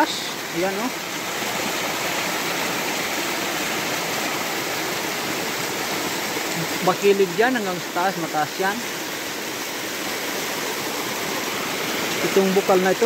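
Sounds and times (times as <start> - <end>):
spring water pouring over rocks: 0.0 - 13.0.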